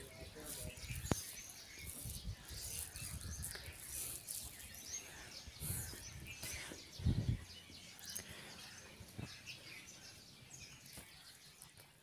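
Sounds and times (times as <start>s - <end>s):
faint bird chirps: 0.0s - 12.0s
low rumble on the microphone: 5.0s - 8.4s.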